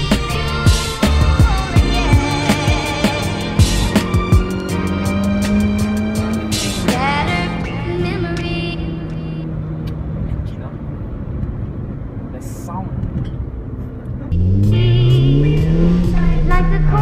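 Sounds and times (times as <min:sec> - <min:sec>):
car engine and road noise: 0:00.0 - 0:17.0
loud voice over rising tone: 0:14.3 - 0:17.0.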